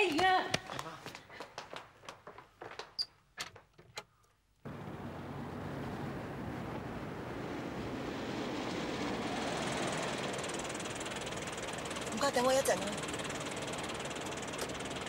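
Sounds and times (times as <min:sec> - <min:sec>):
car engine and tyres approaching: 0:04.7 - 0:15.0
street traffic noise: 0:04.7 - 0:15.0.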